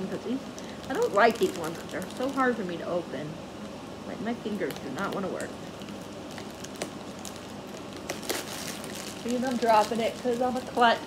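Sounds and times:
plastic pouch crinkling: 0.4s - 2.7s, 4.6s - 11.0s.

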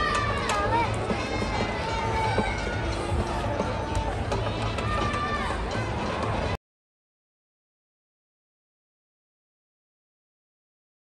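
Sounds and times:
music over stadium loudspeakers: 0.0s - 6.6s.

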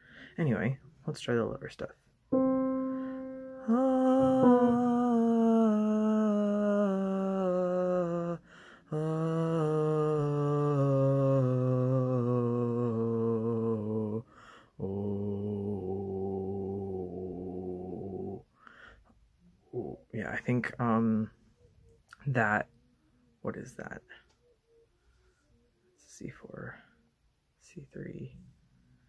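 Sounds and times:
singer breathing: 0.0s - 0.4s, 2.9s - 3.4s, 8.4s - 9.0s, 14.2s - 14.8s, 18.5s - 19.2s
low voice singing descending runs: 2.4s - 14.2s, 14.8s - 18.4s.

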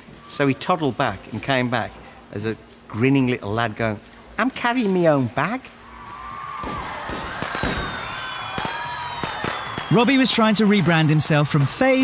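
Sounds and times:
high whistling tones falling: 5.9s - 10.8s.

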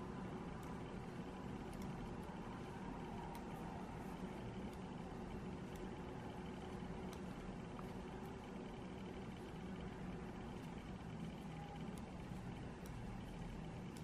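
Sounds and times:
background hum and hiss: 0.0s - 14.0s
knitting needles ticking: 0.0s - 14.0s.

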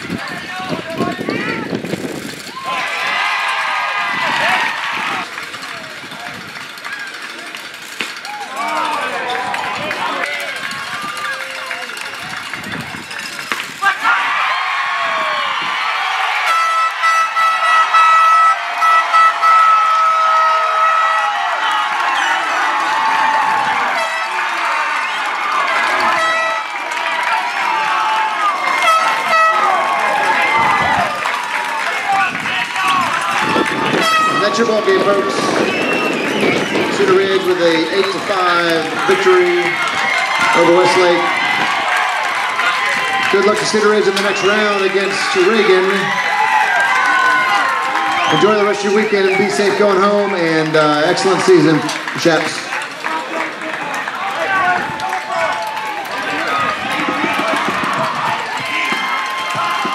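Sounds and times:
crowd cheering and shouting: 0.0s - 59.9s
air horn chord: 16.5s - 20.2s, 23.9s - 24.4s, 26.1s - 26.7s, 34.0s - 34.6s.

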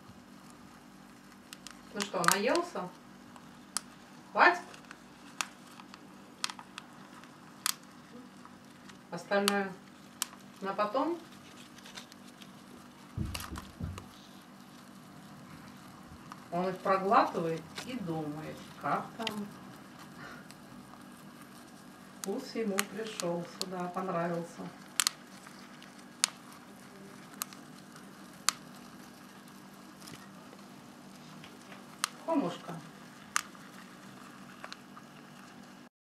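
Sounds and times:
plastic cup handling thumps: 13.1s - 14.1s.

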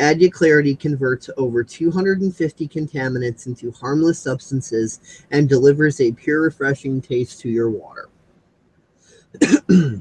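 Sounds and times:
man coughing: 9.4s - 10.0s.

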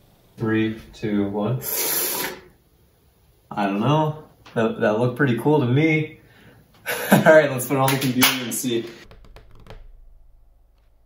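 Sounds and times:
steady low hum: 0.0s - 9.1s.

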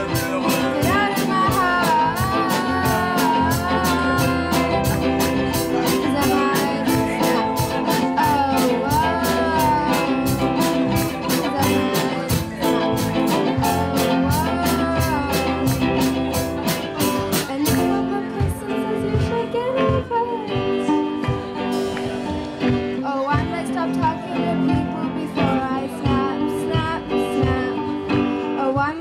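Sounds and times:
female lead vocal: 0.0s - 21.9s, 22.7s - 29.0s
live pop-rock band: 0.0s - 29.0s.

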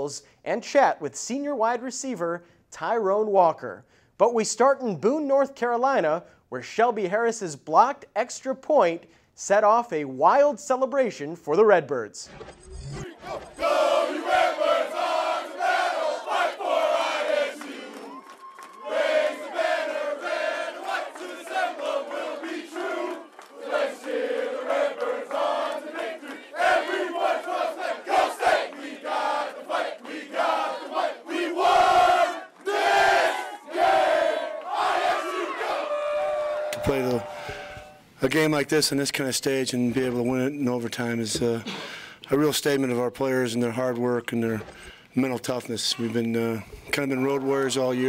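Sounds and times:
players shouting and chanting: 13.0s - 38.0s, 46.9s - 48.0s.

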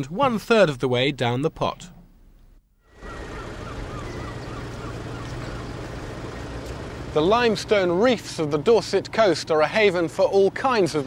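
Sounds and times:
low engine drone: 1.8s - 11.0s.

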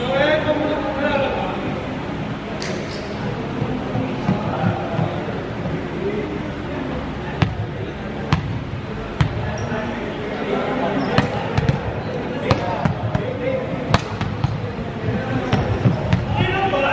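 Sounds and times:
balls striking hardwood floor: 11.2s - 13.3s, 13.9s - 14.8s, 15.5s - 16.4s.

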